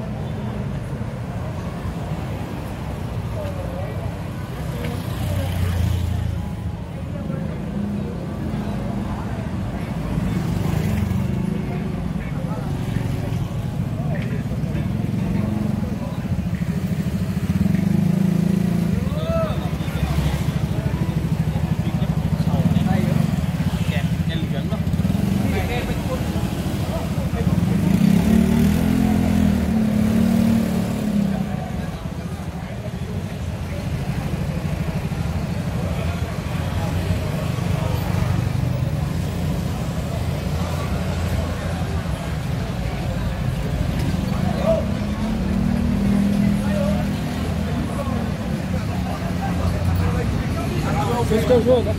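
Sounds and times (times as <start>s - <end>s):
motorbike engines passing: 0.0s - 51.9s
people talking: 0.0s - 51.9s.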